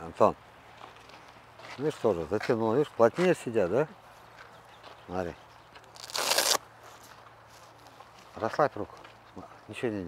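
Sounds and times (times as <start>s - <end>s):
velcro strap ripped open: 5.8s - 6.6s.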